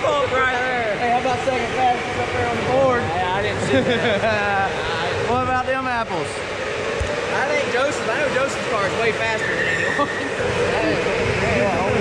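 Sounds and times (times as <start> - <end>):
people talking: 0.0 - 6.4, 7.3 - 12.0
steady background din: 0.0 - 12.0.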